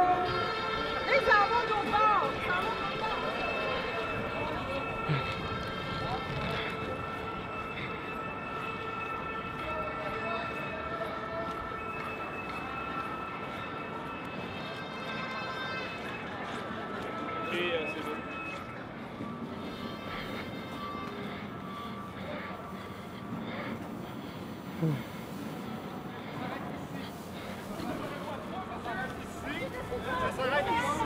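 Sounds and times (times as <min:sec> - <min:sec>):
indistinct crowd voices: 0:00.0 - 0:31.0
steady high-pitched tone: 0:15.3 - 0:31.0.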